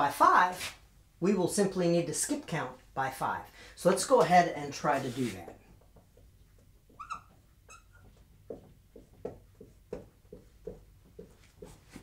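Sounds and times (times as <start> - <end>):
marker scratching strokes and taps: 5.0 - 12.0
marker squeaking on whiteboard: 6.6 - 8.6.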